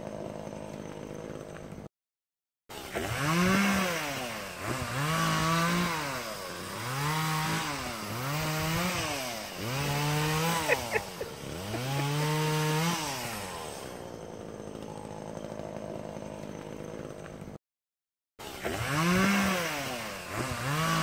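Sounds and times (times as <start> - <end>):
small engine revving: 0.0 - 1.9, 2.7 - 17.6, 18.4 - 21.0.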